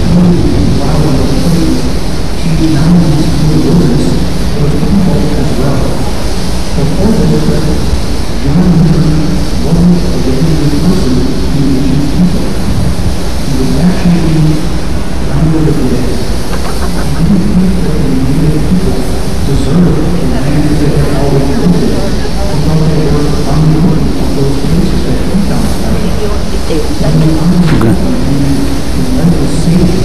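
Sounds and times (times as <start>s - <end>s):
muffled voices talking: 0.0s - 30.0s
wind buffeting microphone: 0.0s - 30.0s.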